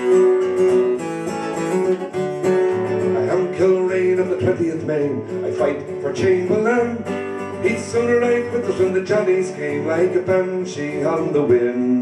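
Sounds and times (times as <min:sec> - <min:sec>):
acoustic guitar strummed in chords: 0:00.0 - 0:12.0.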